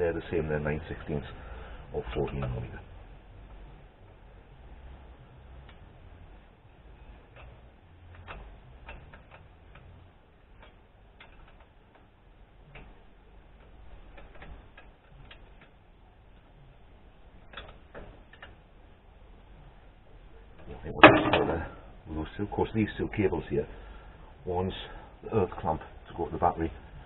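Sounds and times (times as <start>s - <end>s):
ratchet clicking: 7.3s - 13.0s, 17.4s - 18.6s
metal clatter: 20.6s - 21.8s.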